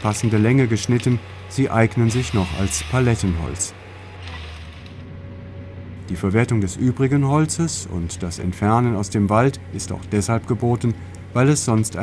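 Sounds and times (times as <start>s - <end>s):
harvester engine hum: 0.0s - 12.0s
hydraulics working: 0.0s - 12.0s.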